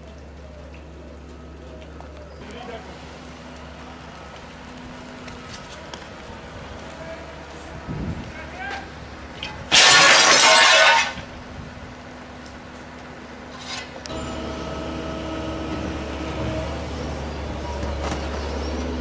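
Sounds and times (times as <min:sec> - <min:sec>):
heavy engine running: 0:00.0 - 0:19.0.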